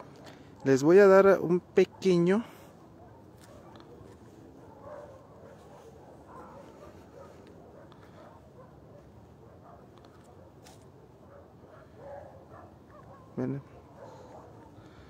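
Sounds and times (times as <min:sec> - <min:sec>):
distant dogs barking: 0:00.0 - 0:15.0
low outdoor background noise: 0:00.0 - 0:15.0.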